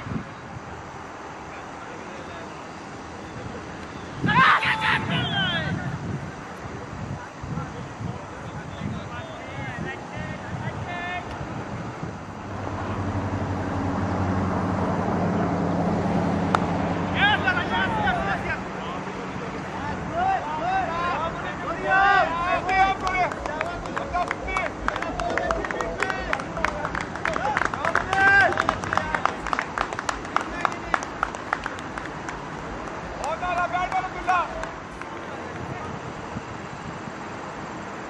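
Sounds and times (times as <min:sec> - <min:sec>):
low engine drone: 0:11.5 - 0:19.9
cricket bat striking ball: 0:16.5 - 0:16.8
players calling out: 0:16.5 - 0:36.2
people clapping: 0:22.0 - 0:35.9.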